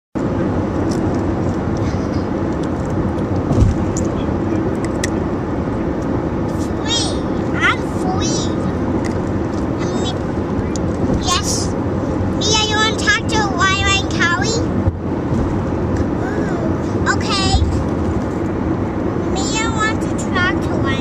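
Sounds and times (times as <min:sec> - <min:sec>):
car cabin road and engine noise: 0:00.2 - 0:21.0
low thump: 0:03.5 - 0:03.9.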